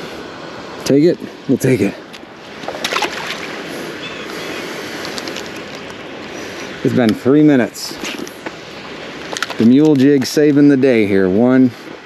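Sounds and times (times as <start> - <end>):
steady rushing noise: 0.0 - 12.0
fish splashing into water: 2.6 - 6.0.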